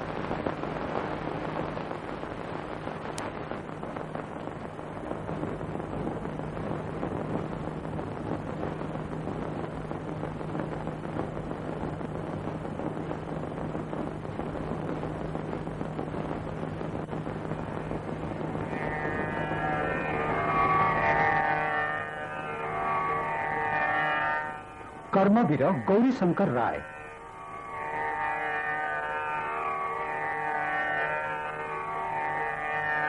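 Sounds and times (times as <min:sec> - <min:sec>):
low hum: 0:00.0 - 0:33.0
steady rushing noise: 0:00.0 - 0:33.0.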